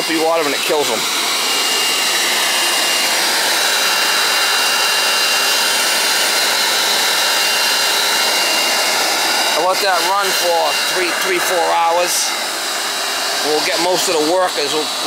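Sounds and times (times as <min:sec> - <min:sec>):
shop vacuum running: 0:00.0 - 0:15.0.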